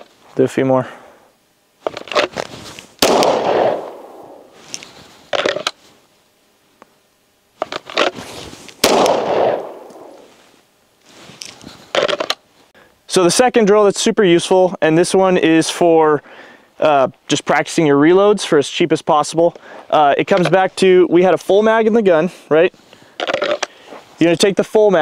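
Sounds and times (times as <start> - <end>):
short sharp gunshot cracks: 3.0 - 4.4, 8.8 - 10.3
pistol shots echoing: 3.0 - 4.5, 8.8 - 10.2.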